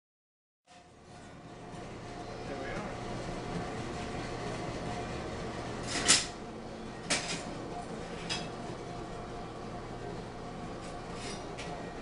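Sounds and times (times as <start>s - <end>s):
bandsaw motor hum: 1.0s - 12.0s.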